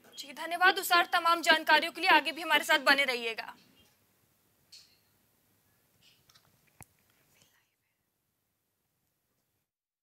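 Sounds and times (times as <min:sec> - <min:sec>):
faint background hiss: 0:00.0 - 0:09.7.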